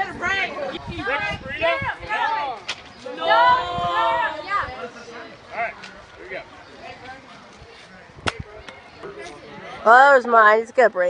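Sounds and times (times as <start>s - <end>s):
faint chatter: 0.0s - 11.0s.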